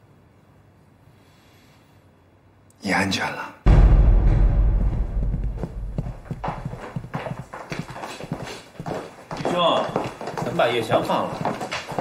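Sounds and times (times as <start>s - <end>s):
low rumble: 3.7s - 7.0s
footsteps on hard floor: 4.8s - 12.0s.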